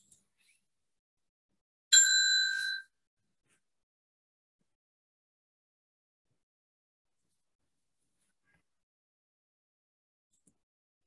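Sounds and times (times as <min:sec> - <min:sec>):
bell-like ding: 0:02.0 - 0:02.8.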